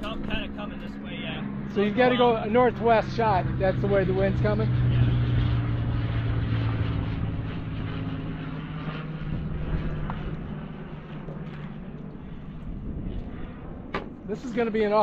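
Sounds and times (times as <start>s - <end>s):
seaplane engine idling: 0.0s - 15.0s
wind and water rumble: 0.0s - 15.0s.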